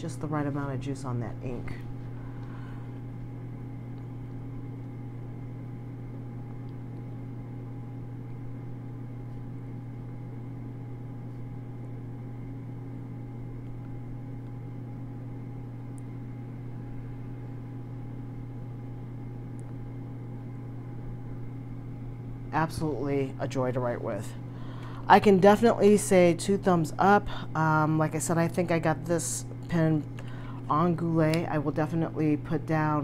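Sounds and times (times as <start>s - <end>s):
low machine hum: 0.0s - 33.0s.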